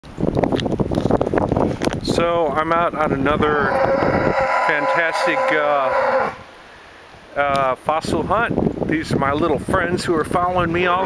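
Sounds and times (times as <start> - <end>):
wind buffeting microphone: 0.0 - 6.5, 7.5 - 11.0.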